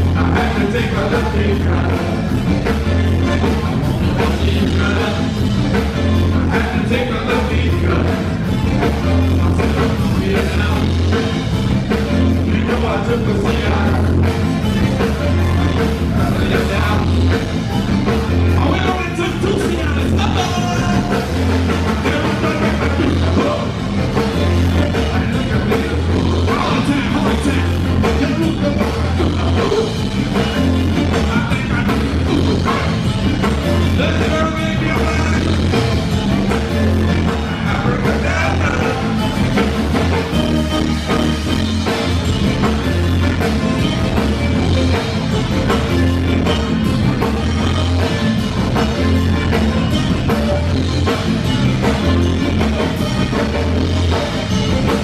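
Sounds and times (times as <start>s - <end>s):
pulsing bass line: 0.0s - 55.0s
zydeco band playing: 0.0s - 55.0s.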